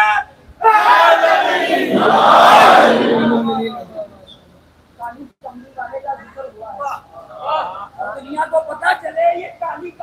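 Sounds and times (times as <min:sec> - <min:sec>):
crowd chanting: 0:00.7 - 0:03.6.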